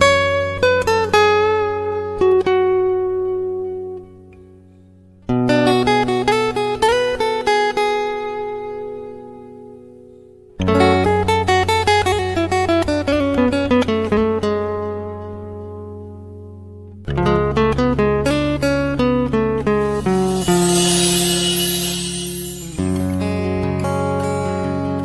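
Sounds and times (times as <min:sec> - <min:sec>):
plucked acoustic guitar: 0:16.8 - 0:25.0
held bass: 0:19.6 - 0:23.8
bright hissing shimmer: 0:19.8 - 0:23.8.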